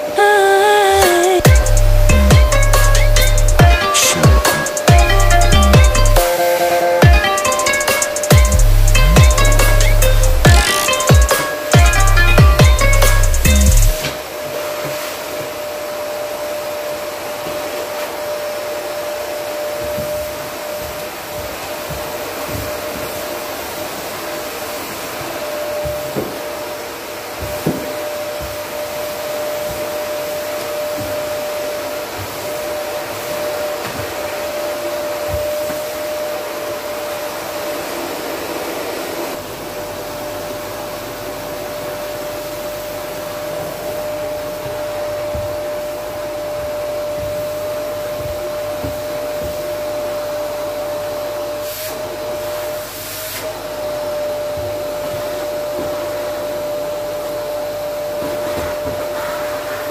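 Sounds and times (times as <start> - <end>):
vacuum cleaner motor whine: 13.5 - 59.9.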